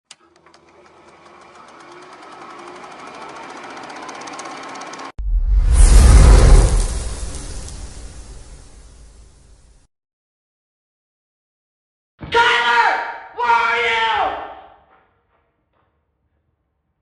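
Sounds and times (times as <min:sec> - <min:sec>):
rapid projector-style clicking: 0:00.1 - 0:05.2
deep boom: 0:05.2 - 0:09.0.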